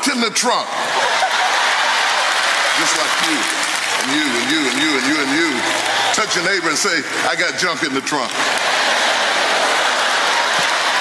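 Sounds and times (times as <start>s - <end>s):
preacher speaking: 0.0s - 0.9s, 2.7s - 8.4s
audience applauding: 0.8s - 11.0s.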